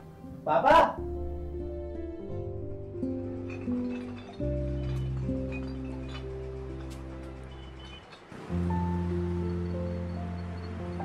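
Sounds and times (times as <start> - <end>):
sustained background music with bass: 0.0 - 11.0.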